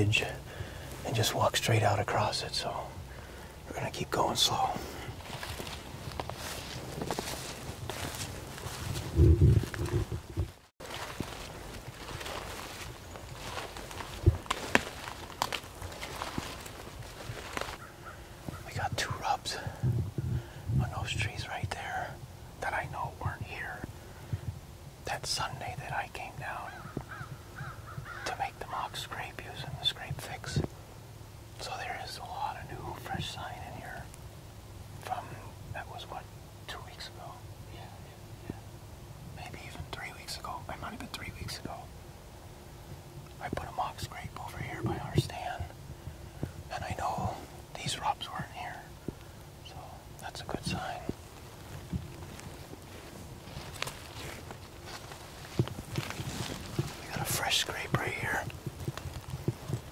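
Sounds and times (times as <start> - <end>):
person whispering: 0.0 - 3.1, 3.7 - 5.8, 7.3 - 10.2, 18.6 - 19.8, 20.8 - 23.9, 25.0 - 26.9, 28.2 - 30.7, 31.6 - 34.1, 35.0 - 38.6, 39.4 - 41.9, 43.4 - 45.7, 46.7 - 49.0, 49.6 - 51.2, 56.7 - 58.5.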